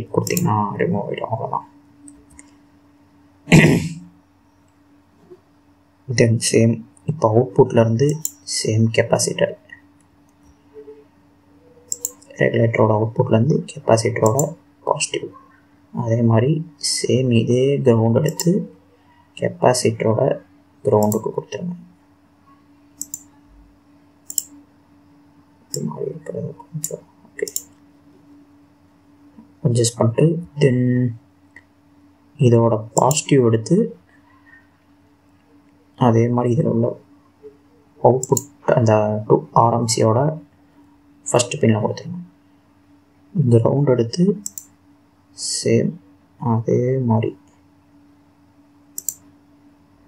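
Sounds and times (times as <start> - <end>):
faint steady hum: 0.0 - 50.0
computer mouse clicks: 0.2 - 0.5, 8.0 - 8.4, 11.9 - 12.3, 14.2 - 14.5, 18.2 - 18.6, 21.0 - 21.3, 23.0 - 23.3, 24.3 - 24.6, 26.7 - 27.8, 33.0 - 33.2, 38.2 - 38.6, 44.4 - 44.8, 48.9 - 49.3
mouse button clicking: 11.9 - 12.2, 18.2 - 18.6, 23.0 - 23.3, 24.3 - 24.6, 49.0 - 49.2.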